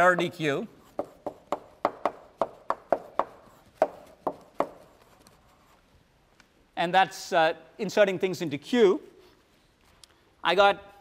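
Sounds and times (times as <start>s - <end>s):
chalk tapping on a blackboard: 0.0s - 5.8s.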